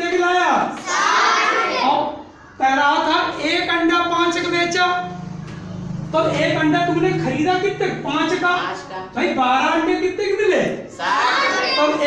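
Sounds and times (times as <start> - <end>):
children answering in chorus: 0.8 - 2.6, 10.9 - 12.0
man speaking: 6.1 - 10.9.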